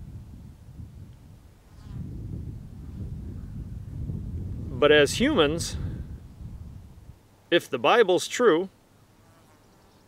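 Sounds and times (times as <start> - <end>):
wind buffeting microphone: 0.0 - 7.2.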